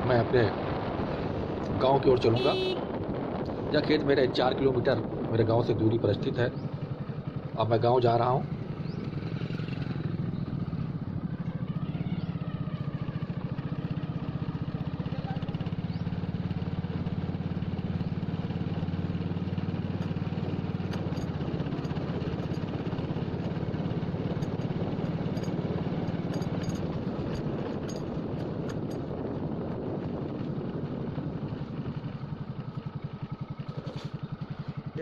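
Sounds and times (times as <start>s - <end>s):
motorcycle engine running: 0.0s - 35.0s.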